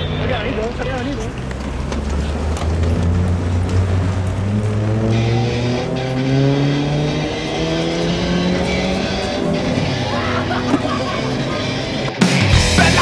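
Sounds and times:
electric guitar and bass rising tones: 0:00.0 - 0:13.0
fast rock song: 0:06.9 - 0:13.0.

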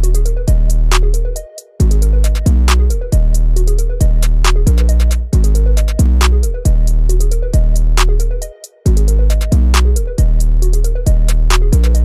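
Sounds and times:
trap beat: 0:00.0 - 0:12.0.

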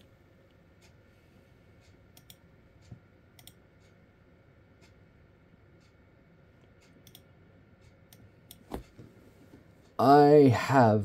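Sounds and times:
computer clicks: 0:02.1 - 0:02.5, 0:03.4 - 0:03.6, 0:06.8 - 0:07.3.

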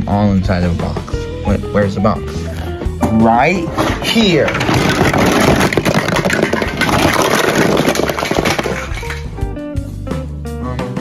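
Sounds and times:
plastic blocks clattering on floor: 0:03.7 - 0:09.4.

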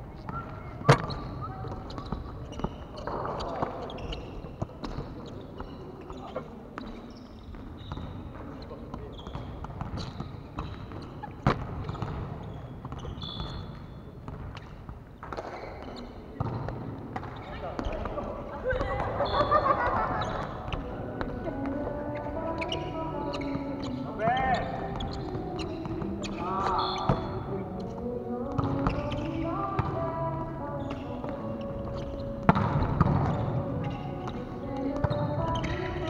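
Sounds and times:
echoing gymnasium ambience: 0:00.0 - 0:36.0
volleyball bouncing off floor: 0:09.2 - 0:18.2, 0:28.5 - 0:29.1, 0:32.4 - 0:35.8
players calling: 0:17.3 - 0:36.0.

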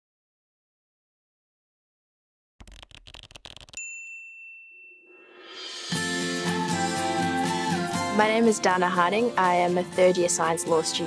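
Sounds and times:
rapid stuttering crackle: 0:02.6 - 0:03.8
bright bell-like ding: 0:03.8 - 0:06.0.

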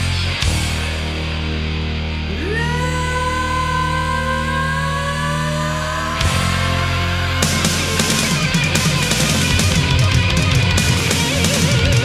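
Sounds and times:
hard rock band playing: 0:00.0 - 0:03.4, 0:06.2 - 0:12.0.

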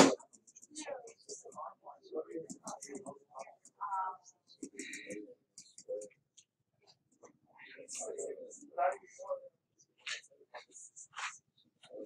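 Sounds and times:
faint whispered muttering: 0:00.0 - 0:06.2, 0:06.8 - 0:12.0.

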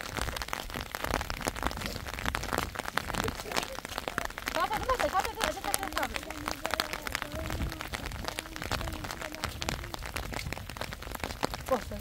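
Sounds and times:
footsteps on wet road: 0:00.0 - 0:12.0
rain patter on wet road: 0:00.0 - 0:12.0
wind rumble on microphone: 0:00.0 - 0:12.0.

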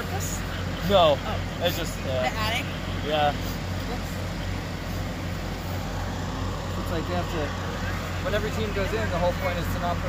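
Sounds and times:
fire engine pump running: 0:00.0 - 0:10.0.

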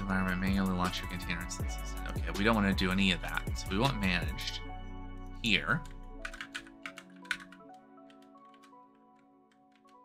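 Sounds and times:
quiet background music: 0:00.0 - 0:10.0
keyboard typing: 0:05.8 - 0:10.0.

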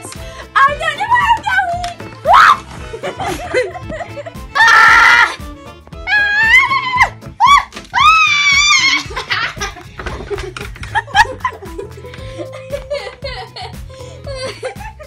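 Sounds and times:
music playing: 0:00.0 - 0:15.0
young voices screaming: 0:02.2 - 0:02.6, 0:04.6 - 0:05.4, 0:06.0 - 0:09.2.

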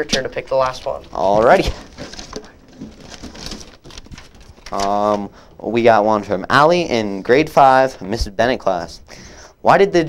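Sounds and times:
paper rustling and crinkling: 0:00.0 - 0:05.4
hand rummaging among paper slips: 0:00.0 - 0:06.3.

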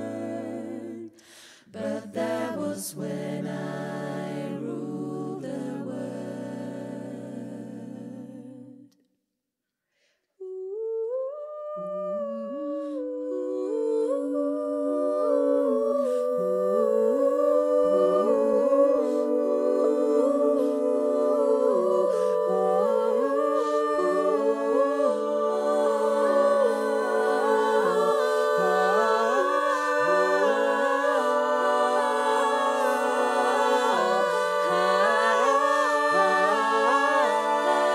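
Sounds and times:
vocal ensemble humming harmony: 0:00.0 - 0:09.0, 0:10.5 - 0:37.9.

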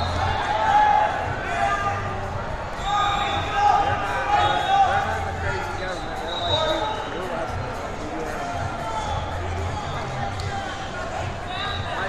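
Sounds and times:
people calling out in echoing hall: 0:00.0 - 0:07.4.

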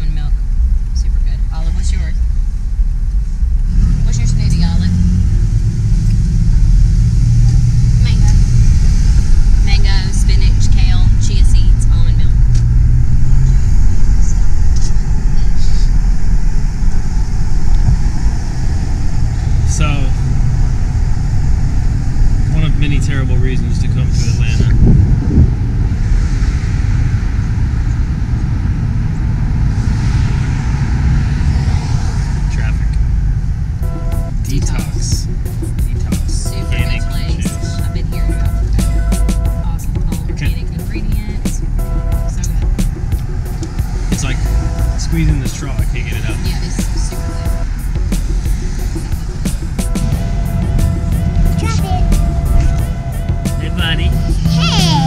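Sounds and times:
wind buffeting microphone: 0:00.0 - 0:34.4
van road and engine rumble: 0:00.0 - 0:55.0.

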